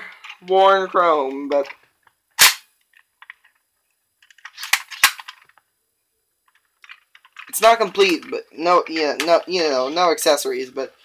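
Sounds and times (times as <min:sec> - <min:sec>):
plastic toy clicking and rattling: 0:06.5 - 0:08.3.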